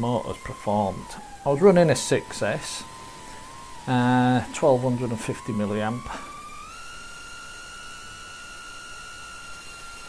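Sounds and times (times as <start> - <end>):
drone motors high-pitched whine: 0.0 - 10.0.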